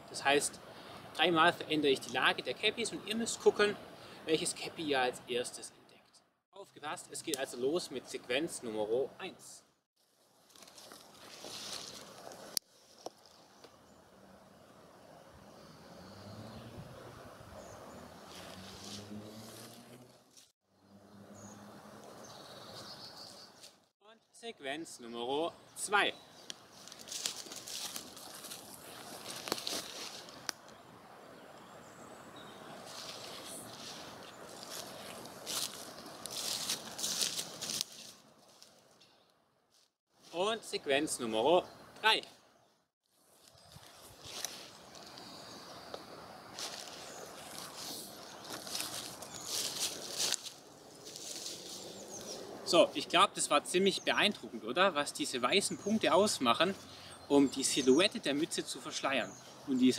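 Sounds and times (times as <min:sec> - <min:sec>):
steady outdoor hiss: 0:00.0 - 0:06.0, 0:06.6 - 0:39.0, 0:39.7 - 0:59.9
footsteps crunching through dry leaves: 0:10.0 - 0:13.6, 0:18.2 - 0:20.6, 0:26.6 - 0:30.6, 0:32.8 - 0:39.0, 0:43.1 - 0:45.3, 0:46.5 - 0:52.4
woodland noise rush: 0:10.4 - 0:20.5, 0:24.4 - 0:38.9, 0:40.1 - 0:42.4, 0:43.2 - 0:59.9.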